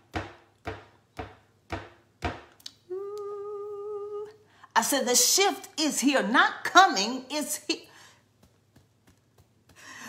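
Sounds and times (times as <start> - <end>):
woman humming: 2.7 - 4.4.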